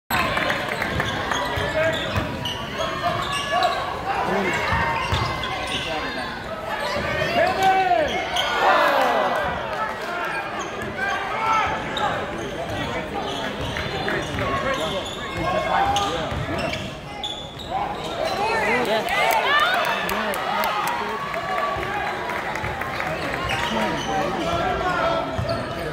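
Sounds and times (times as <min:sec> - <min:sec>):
shouts and chatter: 0:00.1 - 0:25.9.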